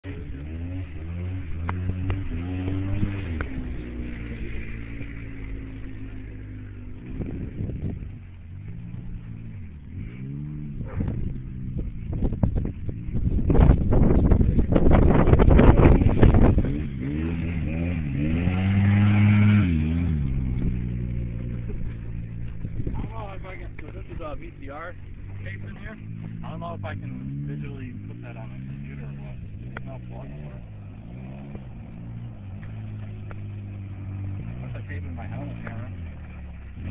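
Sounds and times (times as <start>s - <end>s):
atv engine revving: 0.0s - 36.9s.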